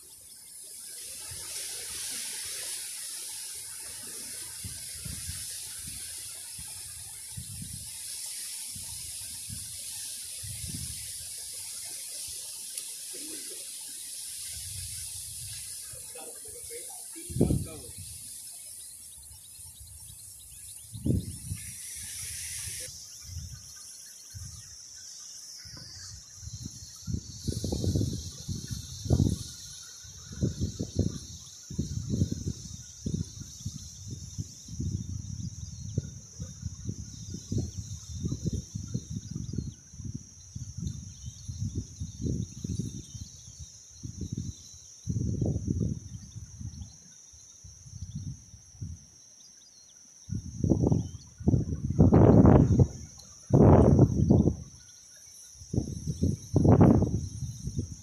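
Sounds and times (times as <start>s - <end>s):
high-pitched insect trill: 0.0s - 58.0s.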